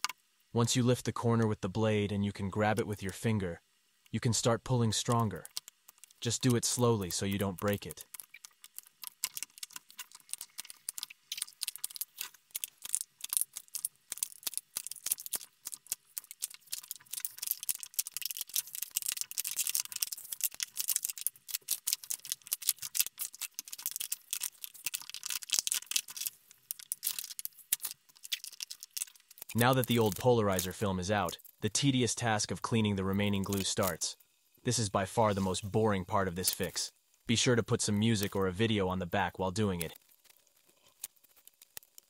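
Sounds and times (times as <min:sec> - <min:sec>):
film peeling off glass crackling: 0:05.0 - 0:31.6, 0:35.1 - 0:36.8, 0:37.7 - 0:38.7, 0:39.5 - 0:42.0.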